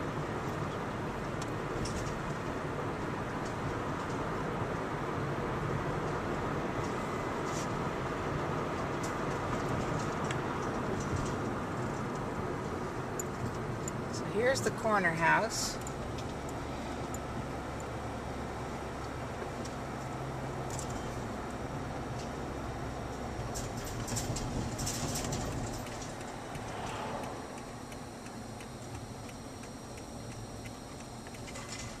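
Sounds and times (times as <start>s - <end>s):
car engine hum: 0.0s - 32.0s.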